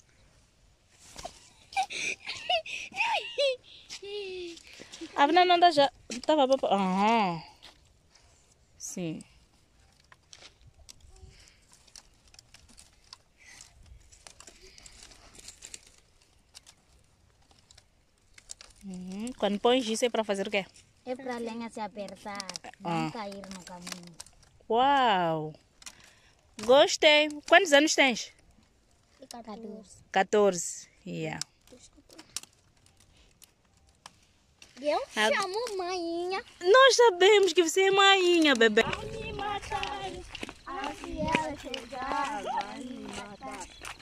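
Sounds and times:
rustling of sticks: 0:00.0 - 0:29.9, 0:30.6 - 0:44.0
woman speaking: 0:05.1 - 0:07.5, 0:08.8 - 0:09.2, 0:18.9 - 0:20.7, 0:22.7 - 0:23.2, 0:24.7 - 0:25.6, 0:26.6 - 0:28.3, 0:30.1 - 0:31.4, 0:36.6 - 0:40.2.

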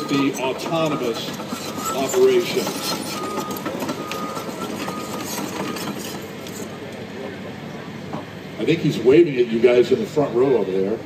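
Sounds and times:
crawler dozer running on gravel: 0:00.0 - 0:06.6.

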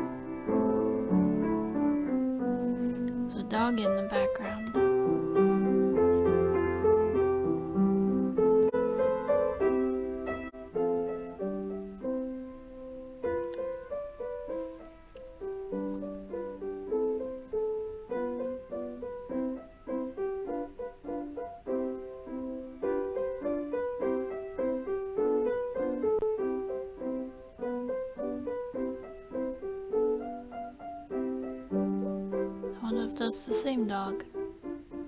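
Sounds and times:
solo piano music: 0:00.0 - 0:35.0.

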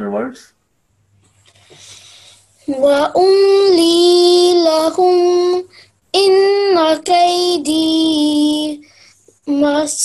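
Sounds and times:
child chanting recitation: 0:02.6 - 0:10.0.

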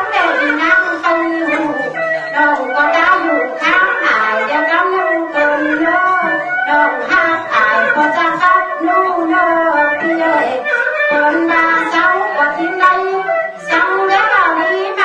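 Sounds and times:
instrumental accompaniment: 0:00.0 - 0:15.0
person singing ornamented melody: 0:00.0 - 0:15.0.

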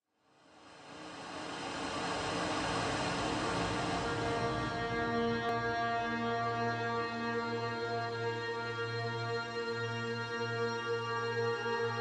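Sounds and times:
hiss-like wash with steady tones: 0:00.2 - 0:06.7
ambient drone music: 0:00.7 - 0:10.5.

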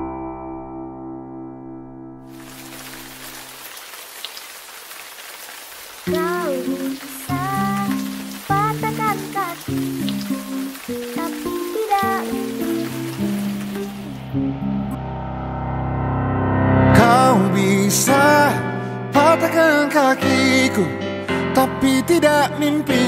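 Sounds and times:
rain hiss: 0:02.3 - 0:14.3
music with sliding melody: 0:06.1 - 0:15.2.

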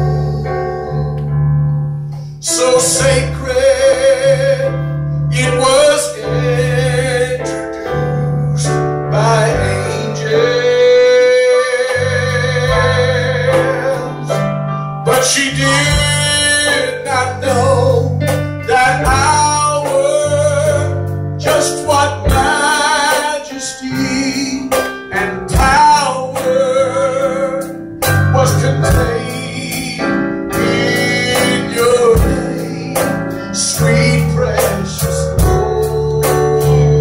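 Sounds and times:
person singing into a microphone: 0:00.0 - 0:01.3, 0:02.4 - 0:37.0
instrumental accompaniment: 0:00.0 - 0:37.0.

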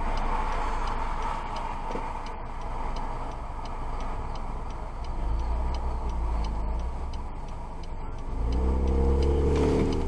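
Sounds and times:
car engine idling hum: 0:00.0 - 0:10.0
car indicator ticking: 0:00.0 - 0:10.0.

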